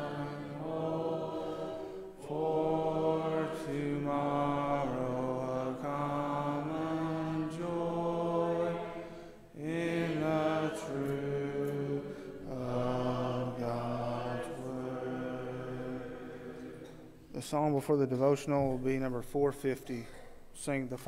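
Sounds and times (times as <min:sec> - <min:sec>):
congregation singing a hymn: 0:00.0 - 0:20.0.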